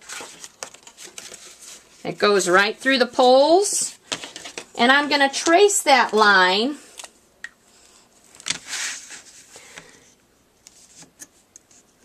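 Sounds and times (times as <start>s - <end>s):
paper plate crinkling: 0.0s - 2.1s.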